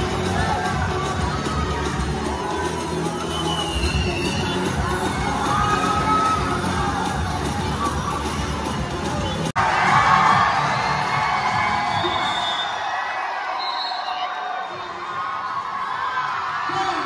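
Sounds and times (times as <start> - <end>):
music: 0.0 - 12.8
crowd cheering and shouting: 0.0 - 17.0.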